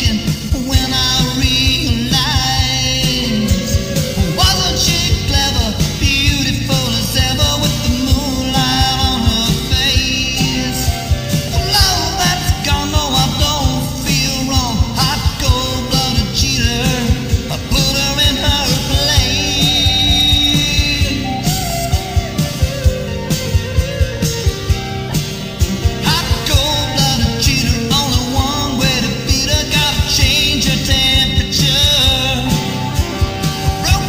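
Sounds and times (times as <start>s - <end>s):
electric guitar melody: 0.0s - 34.0s
thumping beat: 0.0s - 34.0s.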